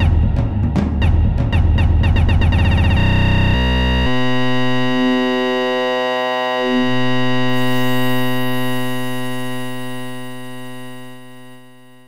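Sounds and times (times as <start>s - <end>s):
held synthesizer tone: 2.8s - 11.8s.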